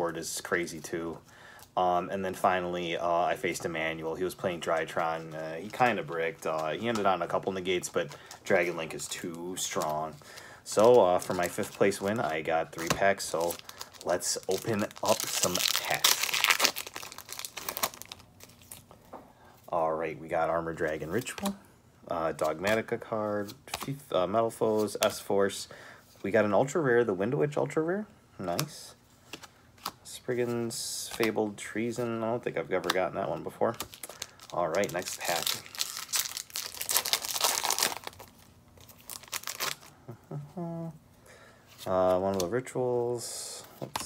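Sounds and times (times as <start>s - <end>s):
foil wrapper crinkling: 10.7s - 18.8s, 33.8s - 39.9s.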